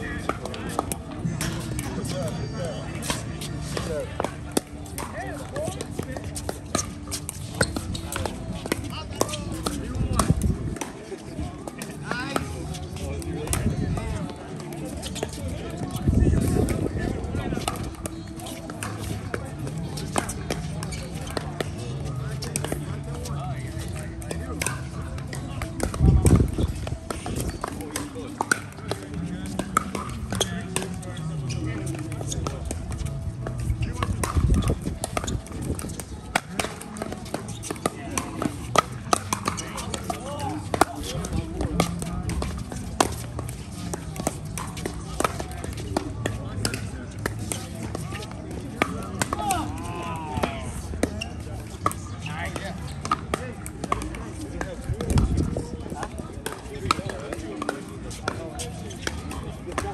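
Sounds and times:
ball bouncing on court: 3.0 - 10.9, 23.9 - 51.2, 51.8 - 55.4
paddles hitting ball: 3.0 - 17.0, 17.6 - 59.9.

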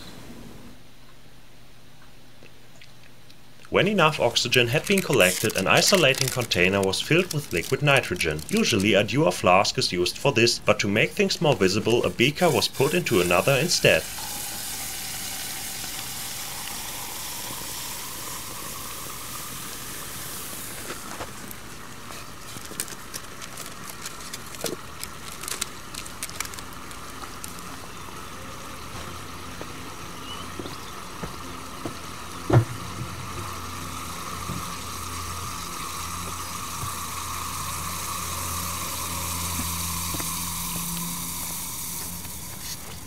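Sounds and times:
crackles and ticks: 2.0 - 10.4, 20.7 - 32.6
liquid nitrogen bubbling hiss: 3.6 - 43.0.

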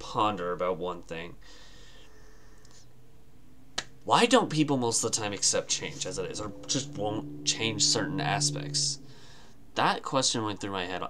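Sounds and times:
speech: 0.0 - 1.4, 4.1 - 9.0, 9.8 - 11.0.

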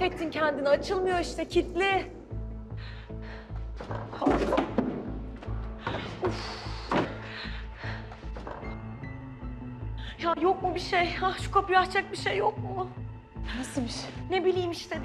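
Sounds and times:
tense music with pulsing beat: 0.0 - 15.0.

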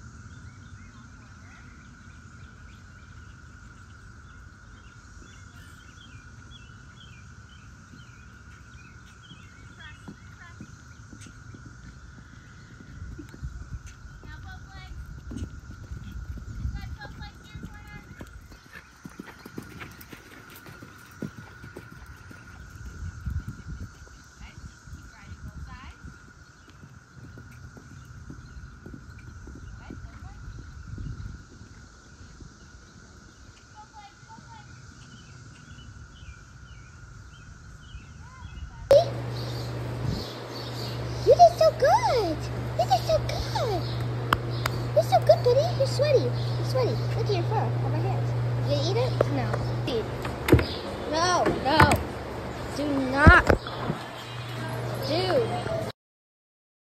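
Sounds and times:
hooves thudding on sand: 7.6 - 35.3, 49.1 - 52.2.

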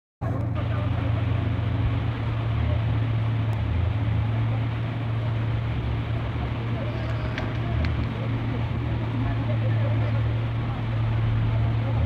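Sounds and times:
floodwater rushing: 0.2 - 12.0
vehicle engine droning: 0.2 - 12.0.

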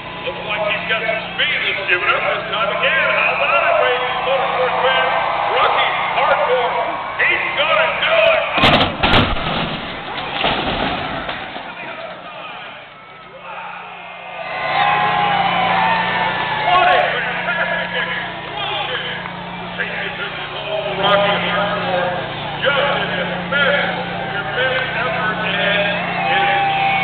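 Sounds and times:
crowd noise: 0.0 - 27.0
car crashing: 8.4 - 12.9.

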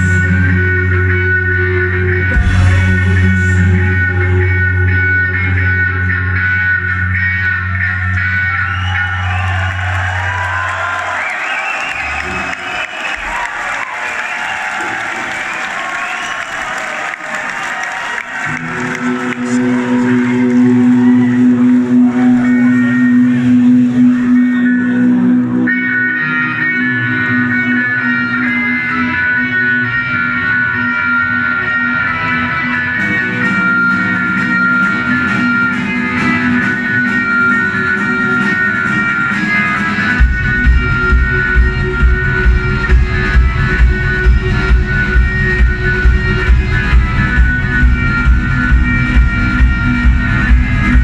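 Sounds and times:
live rock band: 0.0 - 15.0, 18.0 - 51.0.

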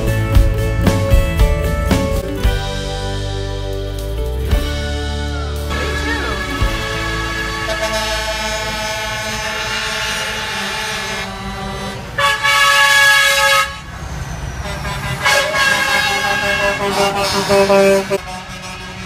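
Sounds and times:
truck air horns honking: 5.3 - 19.0.

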